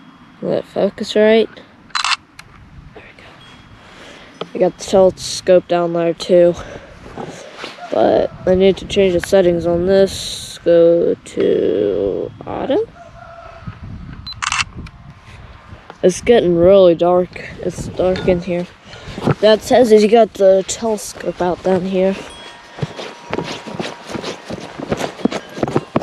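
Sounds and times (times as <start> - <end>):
camera shutter clicks: 2.0 - 2.5, 14.3 - 14.7.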